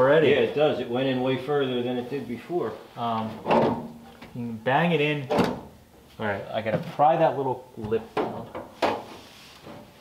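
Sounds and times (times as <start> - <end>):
men talking: 0.0 - 3.5, 4.3 - 5.4, 6.1 - 8.5.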